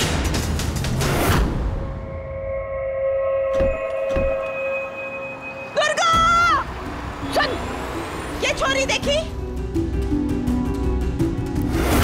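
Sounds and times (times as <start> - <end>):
low rumble of street traffic: 4.9 - 11.3.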